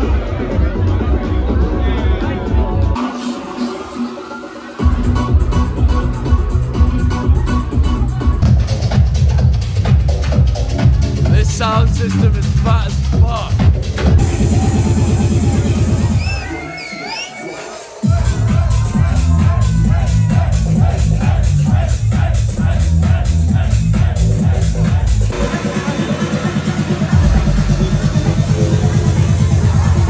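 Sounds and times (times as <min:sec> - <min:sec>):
electronic dance music: 0:00.0 - 0:30.0.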